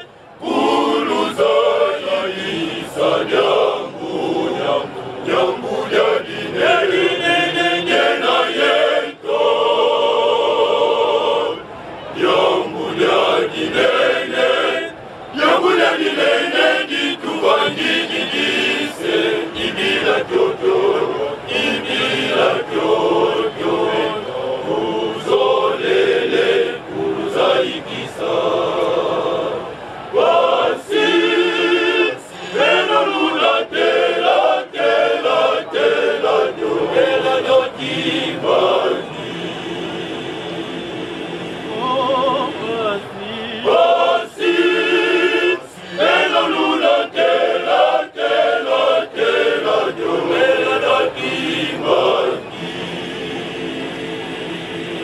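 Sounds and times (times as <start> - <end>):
men's choir singing: 0.0 - 11.6, 12.2 - 55.0.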